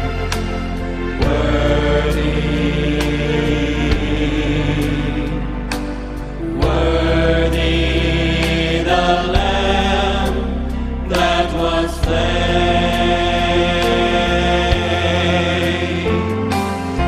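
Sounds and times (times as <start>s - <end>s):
gospel choir singing harmony: 0.0s - 17.0s.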